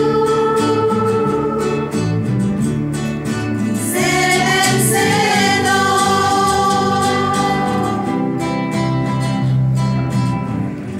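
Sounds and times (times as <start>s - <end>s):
women singing a hymn: 0.0s - 2.2s, 3.8s - 8.6s
acoustic guitar: 0.0s - 10.9s.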